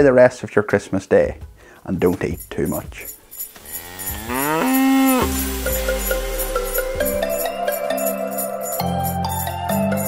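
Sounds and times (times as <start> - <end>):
music with light chimes: 2.0 - 10.0
cow mooing: 3.6 - 5.5.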